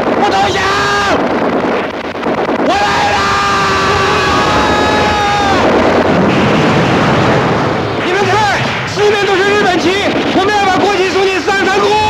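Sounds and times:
rushing battle noise: 0:00.0 - 0:12.0
man shouting battle cry: 0:02.7 - 0:05.7.

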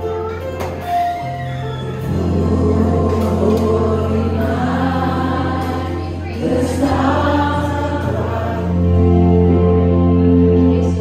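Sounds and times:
sustained bass: 0:00.0 - 0:11.0
choir singing with accompaniment: 0:01.7 - 0:11.0.

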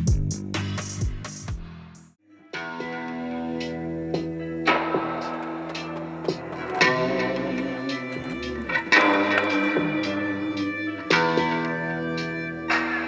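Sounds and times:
electric guitar chords ringing: 0:02.3 - 0:13.0.

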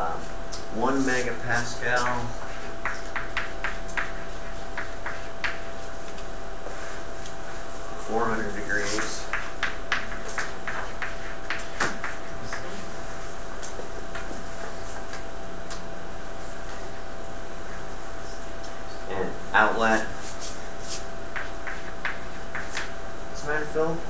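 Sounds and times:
faint room hum: 0:00.0 - 0:24.0
chalk tapping and scraping: 0:00.8 - 0:07.4, 0:08.2 - 0:15.1, 0:19.8 - 0:22.9.

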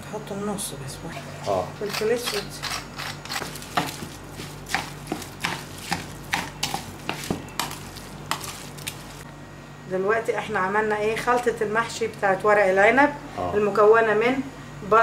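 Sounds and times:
hand squelching wet meat mixture: 0:03.5 - 0:09.3.

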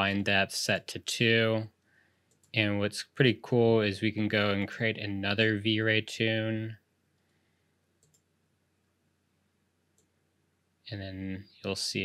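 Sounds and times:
faint computer mouse clicks: 0:08.0 - 0:08.3.

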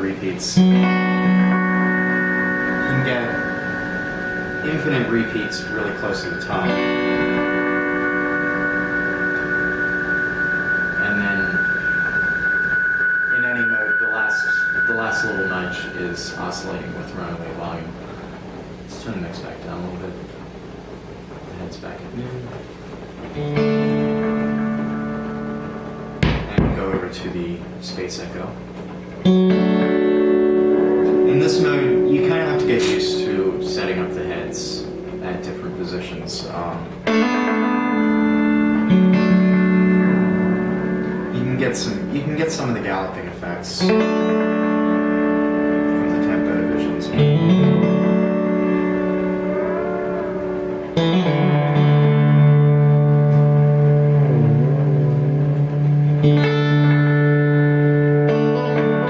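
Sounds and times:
electric guitar chord with delay: 0:00.0 - 0:21.4, 0:22.4 - 0:59.0
bending guitar tones: 0:00.0 - 0:59.0.

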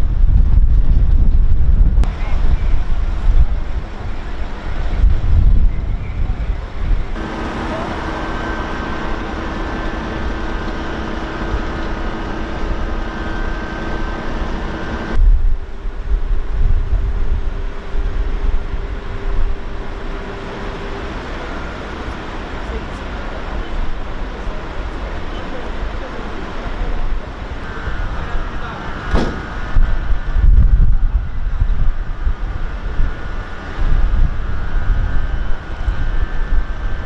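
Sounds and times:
wind buffeting microphone: 0:00.0 - 0:22.3, 0:26.9 - 0:37.0
steady mechanical hum: 0:00.0 - 0:37.0
traffic rumble: 0:00.0 - 0:37.0.

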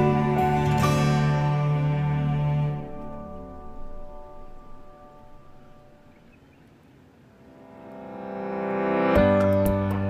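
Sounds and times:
background music: 0:00.0 - 0:06.1, 0:07.4 - 0:10.0
sustained instrumental chords: 0:00.0 - 0:06.3, 0:07.2 - 0:10.0.

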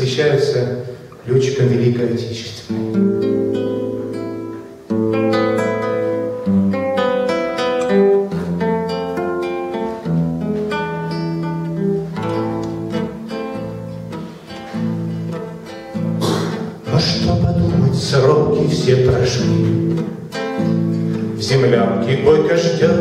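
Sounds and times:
acoustic guitar picking: 0:02.4 - 0:23.0.

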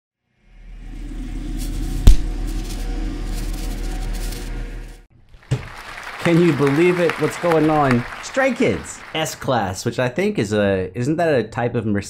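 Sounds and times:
low sustained drone: 0:00.4 - 0:05.1
sharp hit: 0:01.6 - 0:03.7.

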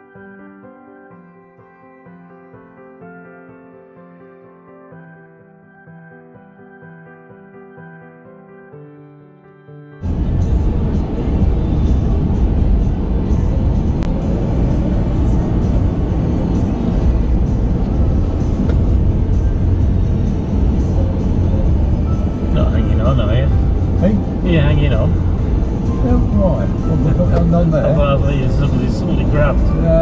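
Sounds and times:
car engine and road rumble: 0:10.0 - 0:30.0
people talking: 0:22.5 - 0:25.2, 0:25.9 - 0:30.0.

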